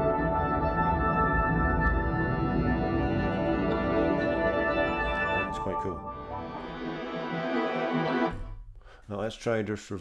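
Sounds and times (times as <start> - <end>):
reversed-sounding piano melody: 0.0 - 8.4.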